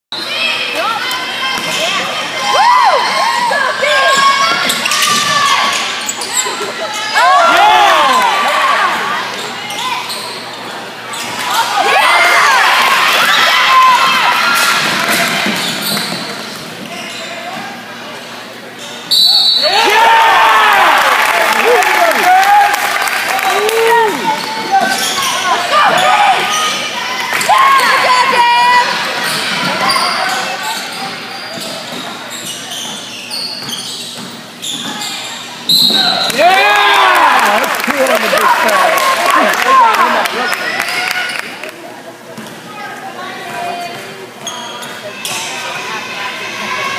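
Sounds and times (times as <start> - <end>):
crowd voices: 0.1 - 46.9
sneakers squeaking on hardwood: 4.1 - 7.2, 8.9 - 11.5, 15.2 - 17.8, 24.3 - 28.0, 29.2 - 36.3, 44.3 - 45.5.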